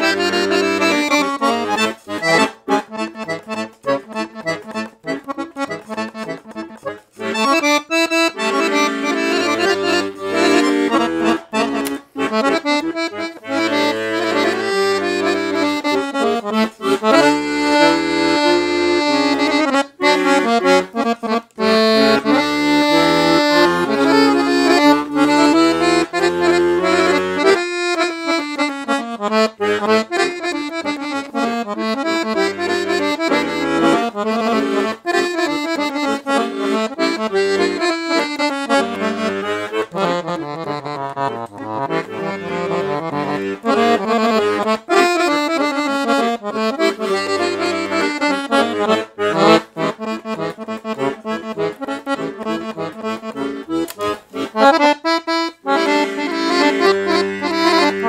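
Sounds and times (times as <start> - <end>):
accordion bass accompaniment: 0.0 - 58.0
accordion melody: 0.0 - 58.0.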